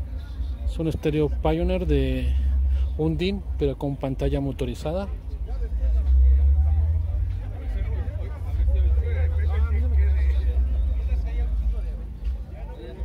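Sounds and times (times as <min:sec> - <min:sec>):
deep bass from car stereo: 0:00.0 - 0:13.0
people talking faintly: 0:00.0 - 0:13.0.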